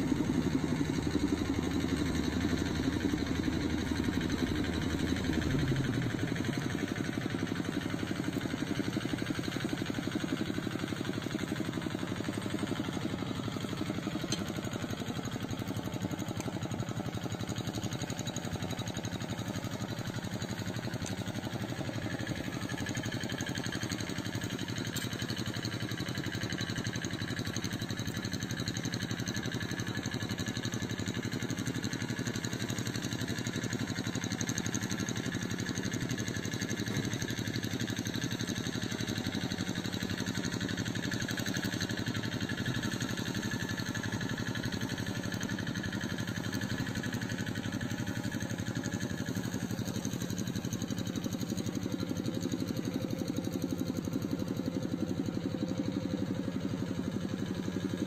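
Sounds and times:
harvester engine idling: 0.0 - 58.0.

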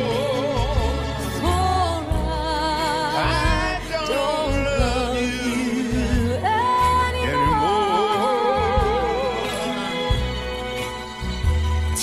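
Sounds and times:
person singing with vibrato: 0.0 - 10.1
bass accompaniment: 0.0 - 12.0.

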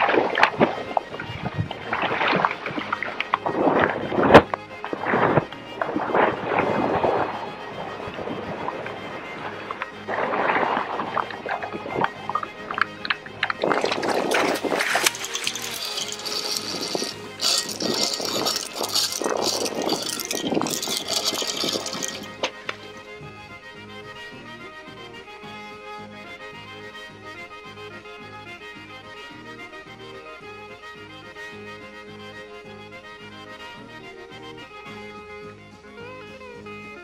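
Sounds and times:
water splashing and churning: 0.0 - 22.5
background music: 0.0 - 37.0.

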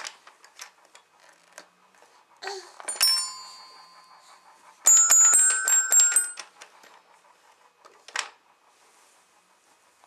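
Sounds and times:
toy xylophone notes: 2.8 - 4.2, 4.9 - 6.5.

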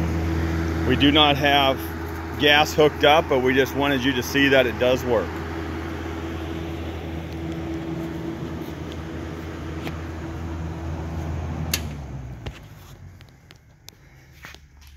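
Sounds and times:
cooling fan running: 0.0 - 14.9
transformer hum: 0.0 - 14.9.

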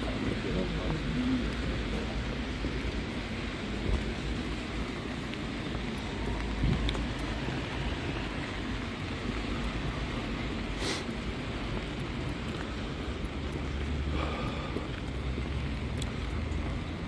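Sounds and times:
rain hissing on wet street: 0.0 - 17.0.

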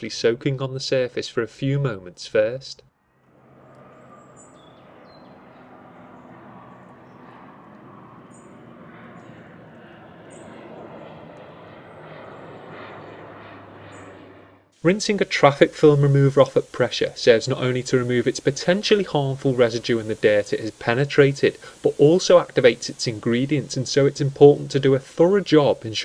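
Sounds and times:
distant rumble: 3.1 - 16.6
faint high bird chirps: 3.9 - 5.4.

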